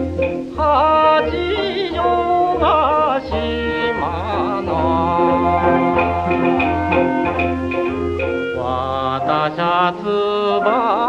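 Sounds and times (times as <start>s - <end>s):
band accompaniment: 0.0s - 11.0s
person singing with vibrato: 0.0s - 11.0s.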